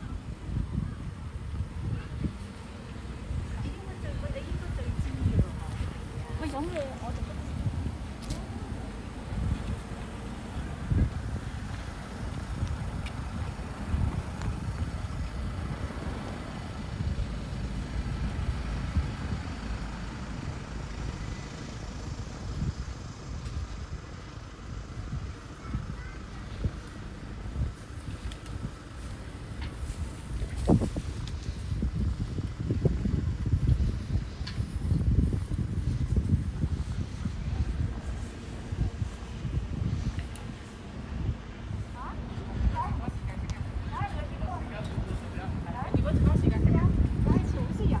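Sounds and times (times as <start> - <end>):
road traffic: 0.0 - 48.0
wind on microphone: 0.0 - 48.0.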